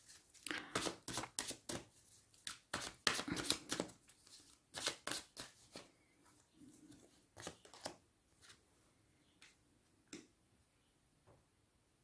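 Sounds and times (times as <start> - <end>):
cards rustling: 0.0 - 5.9, 7.4 - 8.6.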